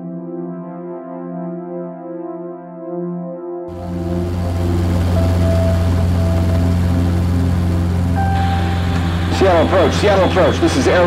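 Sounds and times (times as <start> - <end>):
aircraft engines droning: 3.7 - 11.0
held music notes: 3.7 - 11.0
radio channel hiss: 3.7 - 11.0.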